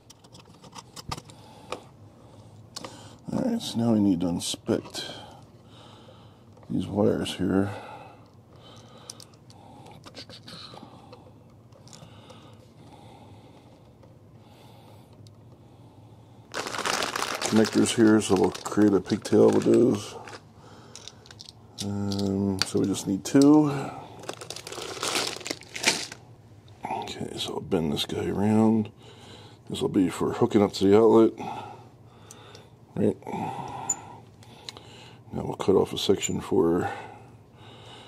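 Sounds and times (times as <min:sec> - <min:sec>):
clicks and scrapes of electrical wires: 0:00.0 - 0:01.4
low steady hum: 0:00.0 - 0:38.0
breathing close to microphone: 0:05.1 - 0:06.5, 0:20.2 - 0:21.3
plastic bag crinkling: 0:16.5 - 0:23.0, 0:24.2 - 0:26.2.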